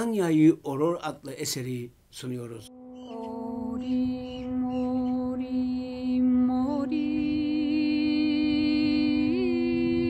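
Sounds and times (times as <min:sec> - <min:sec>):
woman singing lullaby: 0:02.7 - 0:10.0.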